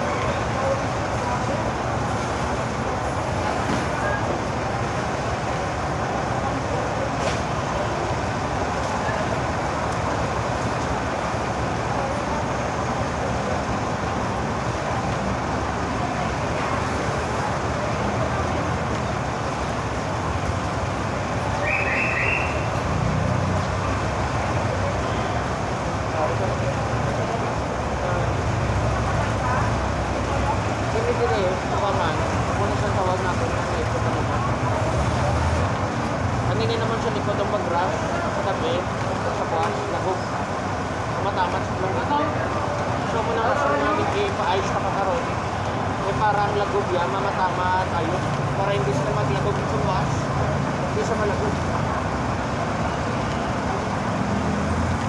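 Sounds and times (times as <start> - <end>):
road traffic: 0.0 - 55.0.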